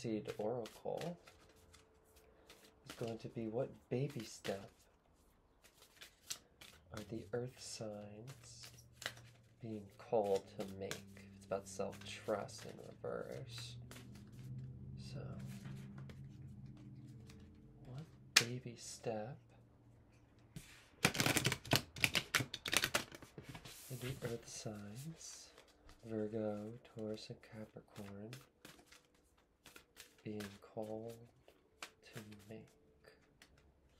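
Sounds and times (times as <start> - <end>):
cards being shuffled: 0.1 - 18.9, 20.6 - 33.9.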